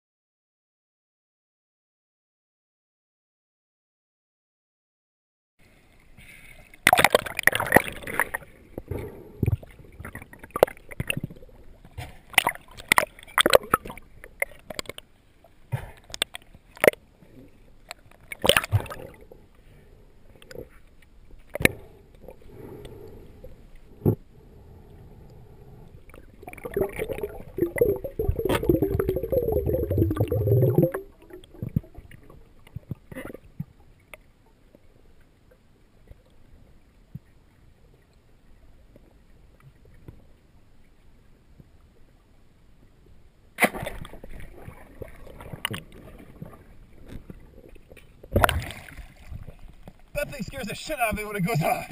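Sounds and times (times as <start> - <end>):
underwater water noise: 5.6 - 51.9
gurgling bubbles: 6.8 - 15.0, 26.1 - 33.5, 44.2 - 49.7.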